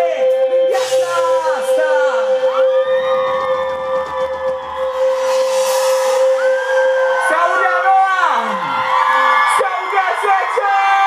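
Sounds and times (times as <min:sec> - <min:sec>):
instrumental band music: 0:00.0 - 0:10.7.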